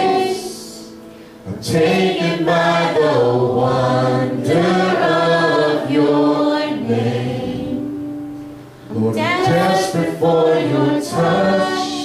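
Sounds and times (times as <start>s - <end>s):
voices singing held notes: 0.0s - 8.2s, 8.9s - 12.0s
keyboard: 0.0s - 12.0s.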